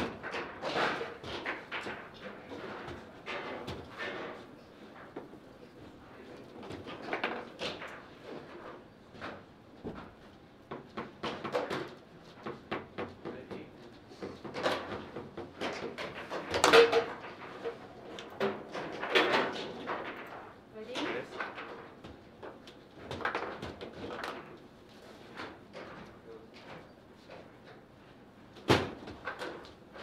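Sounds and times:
foosball clacks and knocks: 0.0s - 5.5s, 6.5s - 27.8s.

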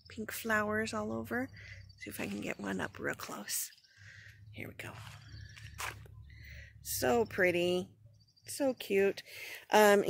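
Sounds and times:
low steady rumble: 0.1s - 8.6s.

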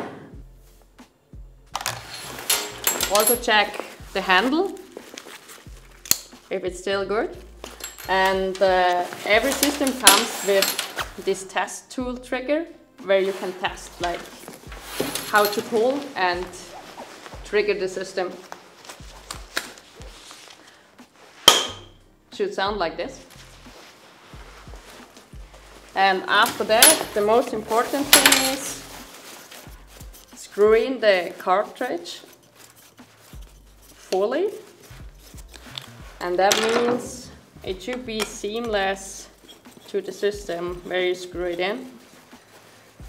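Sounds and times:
faint background music: 0.0s - 43.0s
short rustle: 13.2s - 21.5s, 23.2s - 36.2s, 39.2s - 43.0s.

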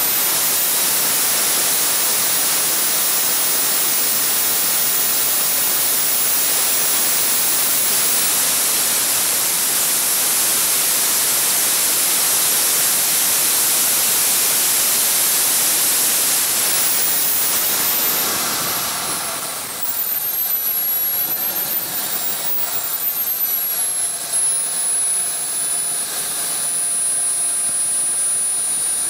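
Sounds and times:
gas turbine engine whine: 0.0s - 29.0s.

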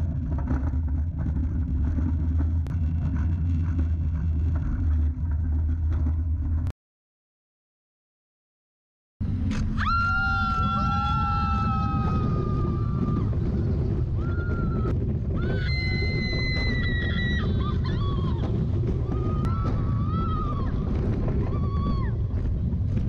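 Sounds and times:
rush of wind and ride noise: 9.2s - 23.0s
riders screaming: 9.6s - 22.4s.

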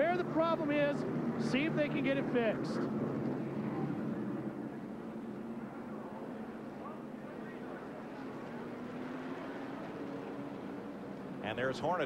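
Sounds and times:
race truck engines droning: 0.0s - 12.0s.

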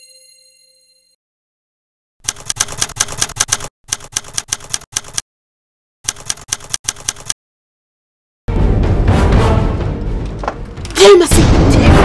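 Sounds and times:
typewriter keys clacking: 2.2s - 5.2s, 6.0s - 7.4s.

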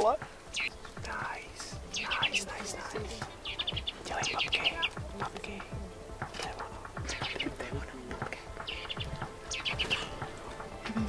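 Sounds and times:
chaffinches chirping: 0.0s - 11.0s.

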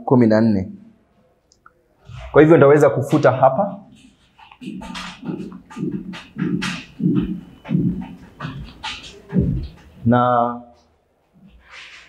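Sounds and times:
cloth scrubbing whiteboard: 3.5s - 10.0s, 11.4s - 12.0s.

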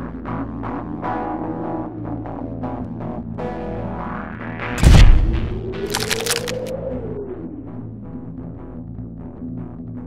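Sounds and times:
heavy low boom: 4.7s - 6.5s
sharp crackling: 4.8s - 6.7s.

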